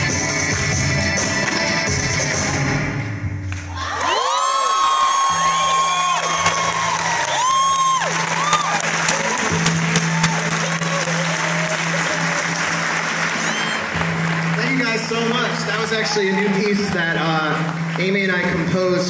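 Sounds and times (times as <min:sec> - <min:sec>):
audience applauding and cheering: 0:03.6 - 0:19.0
whoops and whistles: 0:13.4 - 0:13.9.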